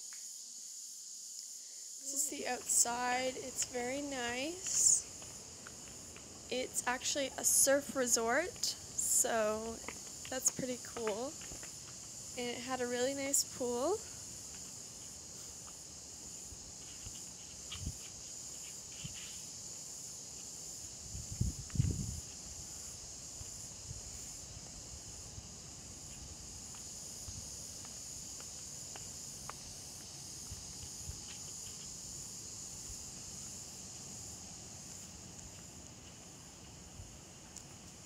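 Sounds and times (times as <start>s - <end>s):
insects buzzing: 0.0s - 38.0s.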